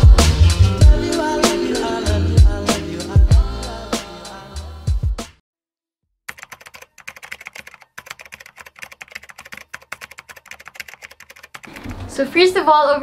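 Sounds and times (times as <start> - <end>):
fast keyboard typing clicks: 6.3 - 12.0.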